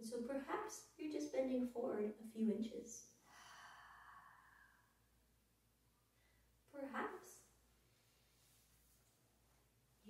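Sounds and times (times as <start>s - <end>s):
woman breathing out softly: 3.2s - 5.0s.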